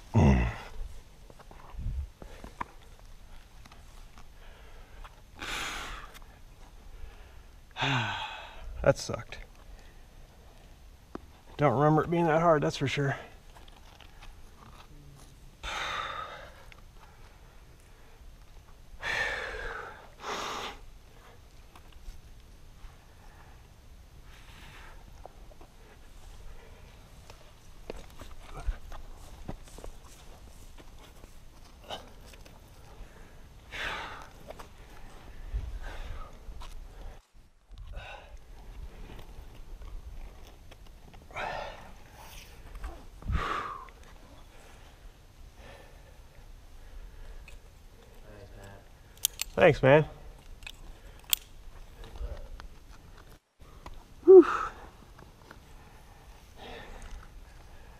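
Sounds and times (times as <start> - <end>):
person breathing heavily: 6.9 - 8.8, 15.6 - 18.2, 19.0 - 21.4, 41.3 - 42.2, 42.9 - 47.5, 53.6 - 55.0, 55.7 - 57.9.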